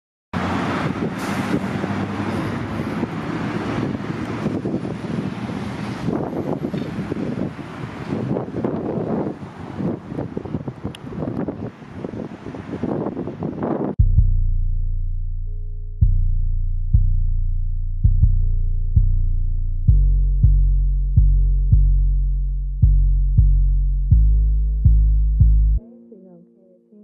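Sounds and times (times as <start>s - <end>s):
steady engine hum: 0.4s - 11.0s
vehicles passing on road: 0.4s - 14.0s.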